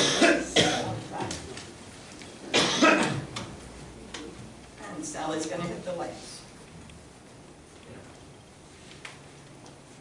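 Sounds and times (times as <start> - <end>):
woman coughing: 0.0 - 1.0, 2.5 - 3.2.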